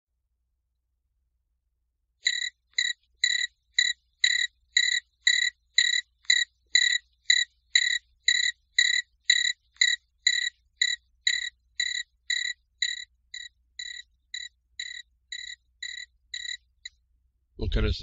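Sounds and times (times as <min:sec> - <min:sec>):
cricket chirping: 0:02.2 - 0:16.9.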